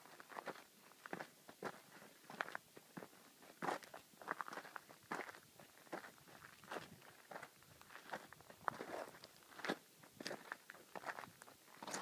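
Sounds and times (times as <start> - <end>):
footsteps on loose gravel: 0.0 - 12.0.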